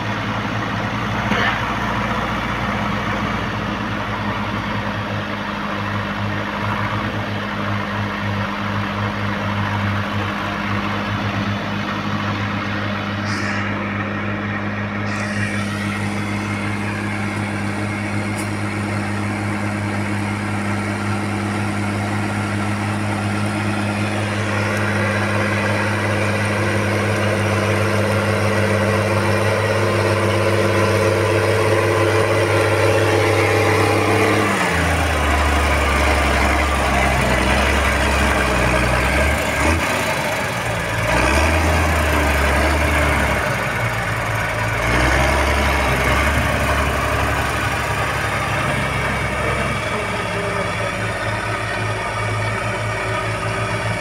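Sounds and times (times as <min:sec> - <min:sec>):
deeper tractor engine pulling plough: 0:00.0 - 0:54.0
tractor engine running under load: 0:00.0 - 0:54.0.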